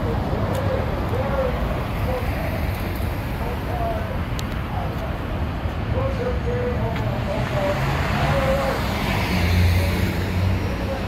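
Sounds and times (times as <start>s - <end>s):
road traffic noise: 0.0s - 11.0s
vehicle passing by: 7.1s - 11.0s.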